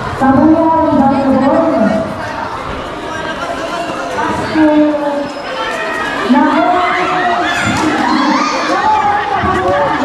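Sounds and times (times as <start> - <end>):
children's voices: 0.0 - 10.0
crowd shouting and cheering: 0.0 - 10.0.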